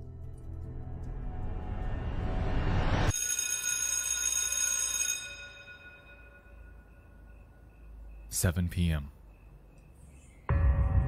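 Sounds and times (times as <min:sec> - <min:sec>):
bright bell-like chime: 0:03.1 - 0:10.6.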